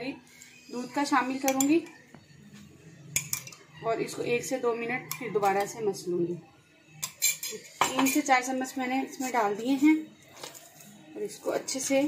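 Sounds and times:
spoon clinking against dish: 0:01.4 - 0:02.0, 0:03.1 - 0:03.8, 0:05.0 - 0:05.8, 0:06.9 - 0:08.4.

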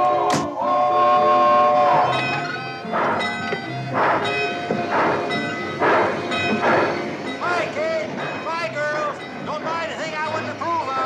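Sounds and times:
music playing: 0:00.0 - 0:11.0
steam locomotive chuffing: 0:00.0 - 0:11.0.

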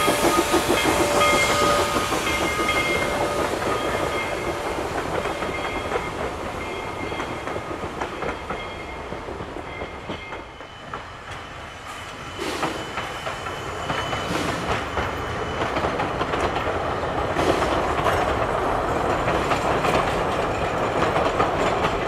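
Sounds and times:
train wheels clattering over rail joints: 0:00.0 - 0:22.0.

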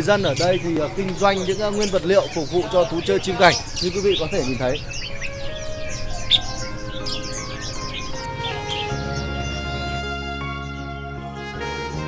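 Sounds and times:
songbirds chirping: 0:00.0 - 0:12.0
background music: 0:02.4 - 0:12.0.

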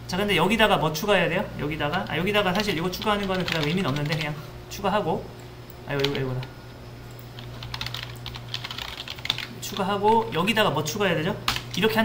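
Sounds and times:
keyboard typing clicks: 0:01.9 - 0:04.2, 0:07.1 - 0:09.5.

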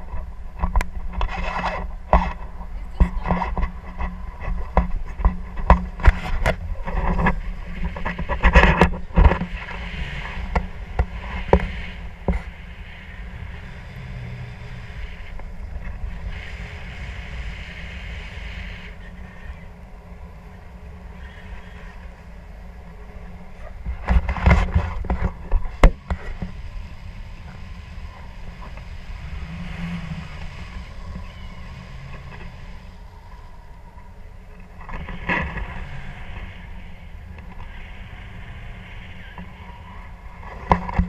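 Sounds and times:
wind rushing over microphone: 0:00.0 - 0:41.0.

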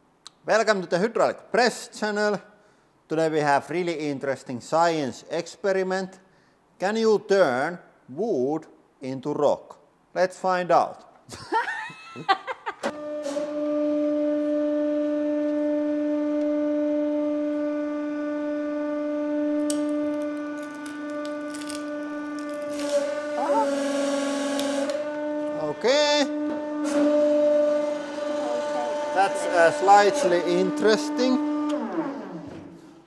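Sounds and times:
wood cracking and creaking: 0:19.7 - 0:23.0
hydraulic pump hum: 0:22.0 - 0:33.0.

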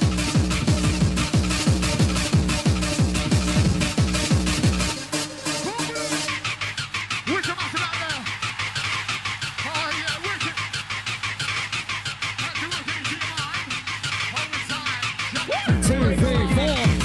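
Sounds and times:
fast percussion ticks: 0:00.0 - 0:17.0
swooping synth sounds: 0:00.0 - 0:17.0.

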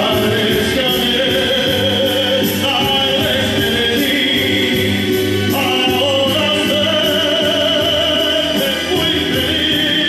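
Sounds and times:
karaoke backing track: 0:00.0 - 0:10.0
man singing into microphone: 0:00.0 - 0:10.0.

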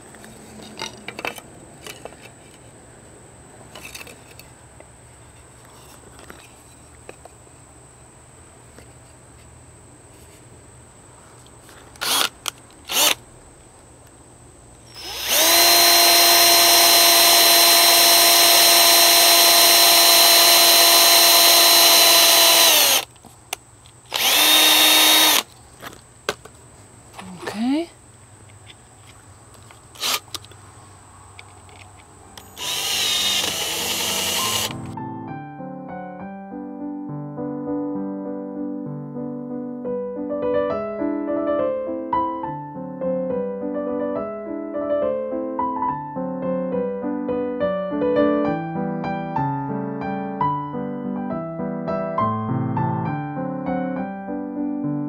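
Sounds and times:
cordless drill driving screws: 0:12.0 - 0:13.2, 0:14.9 - 0:23.1, 0:24.1 - 0:25.5, 0:30.0 - 0:30.4, 0:32.5 - 0:34.9
piano music: 0:33.2 - 0:55.0.

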